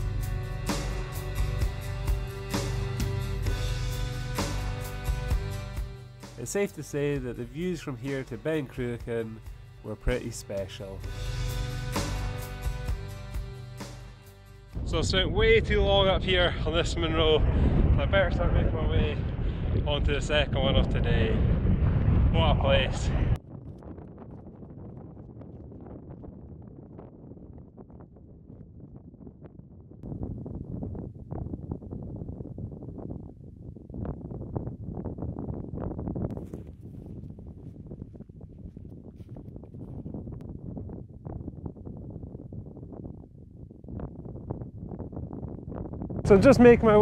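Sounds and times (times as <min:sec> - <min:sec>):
wind buffeting microphone: 0:14.8 - 0:47.0.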